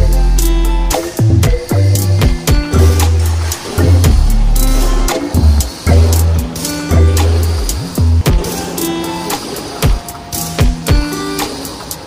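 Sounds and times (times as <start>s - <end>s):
music with strong bass line: 0.0s - 12.0s
steady drum beat: 0.0s - 12.0s.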